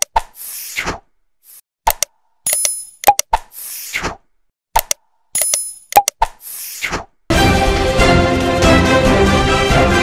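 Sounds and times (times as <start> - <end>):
sharp clicks: 1.8 - 3.5, 4.7 - 6.4.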